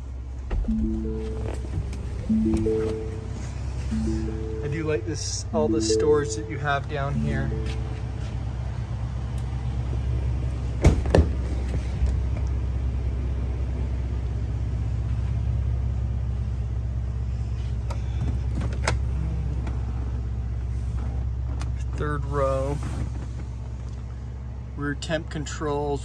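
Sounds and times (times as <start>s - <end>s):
engine idling: 2.9s - 26.0s.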